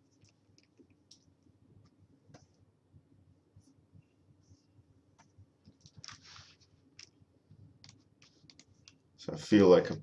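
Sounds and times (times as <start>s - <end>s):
computer keyboard and mouse clicks: 7.8s - 9.0s.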